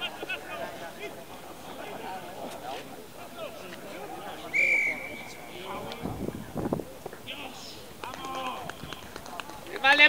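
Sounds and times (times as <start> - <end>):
men talking and calling: 0.0 - 10.0.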